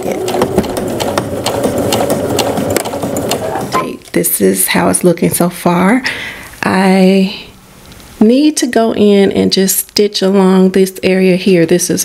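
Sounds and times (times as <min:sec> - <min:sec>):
sewing machine stitching: 0:00.0 - 0:03.9.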